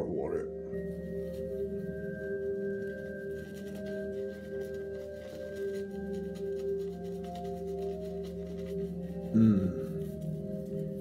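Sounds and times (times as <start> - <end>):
shaving brush swishing lather: 0.7 - 11.0.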